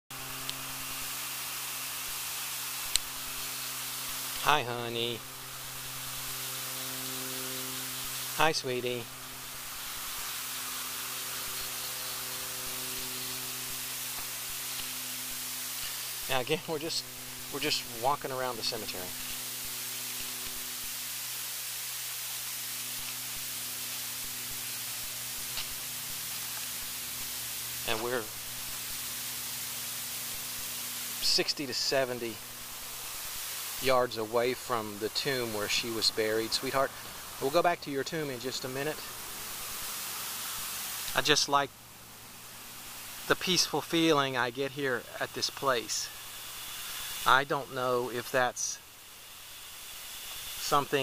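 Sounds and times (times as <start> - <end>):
electronic hiss: 0.1 - 51.0.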